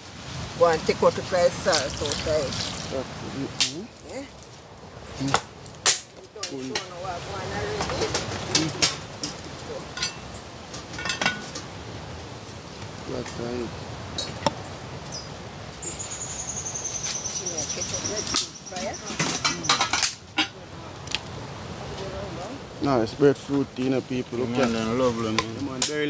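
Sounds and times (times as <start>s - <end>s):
metal pots and pans clinking: 7.8s - 11.7s, 18.2s - 20.6s.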